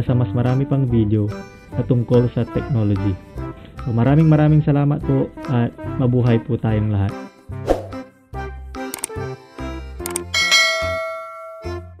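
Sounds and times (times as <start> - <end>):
low bass background music: 0.0 - 12.0
mouse clicks: 8.9 - 9.2
notification bell ding: 10.3 - 12.0.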